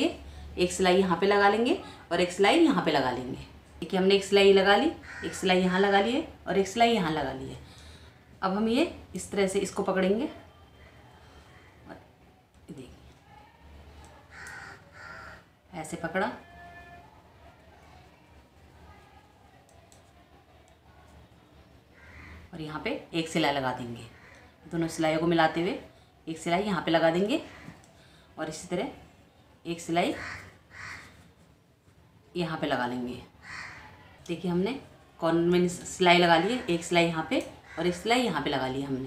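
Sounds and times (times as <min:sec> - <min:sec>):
bird calling hoarsely: 0:30.2 - 0:31.2, 0:33.4 - 0:33.9.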